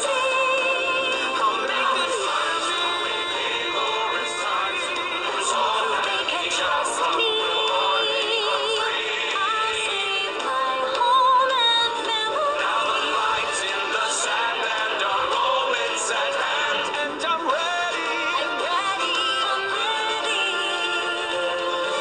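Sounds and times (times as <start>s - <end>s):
music backing: 0.0s - 22.0s
person singing: 0.0s - 22.0s.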